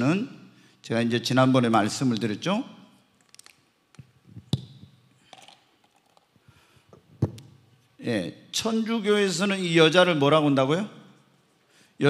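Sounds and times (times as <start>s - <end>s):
microphone handling clicks and taps: 6.9s - 7.6s.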